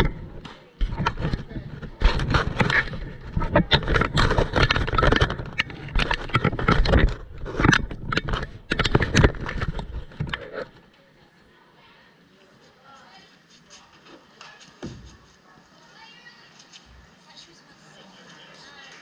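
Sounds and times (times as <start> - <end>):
camera scraping against netting: 0.0 - 10.8.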